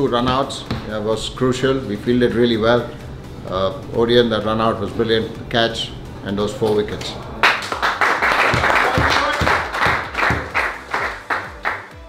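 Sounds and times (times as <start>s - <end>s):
group clapping: 6.6s - 12.0s.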